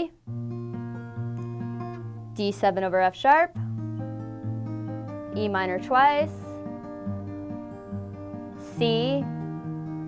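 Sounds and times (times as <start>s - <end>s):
acoustic guitar fingerpicking: 0.2s - 2.7s, 3.5s - 10.0s
guitar bass string pluck: 0.3s - 2.5s.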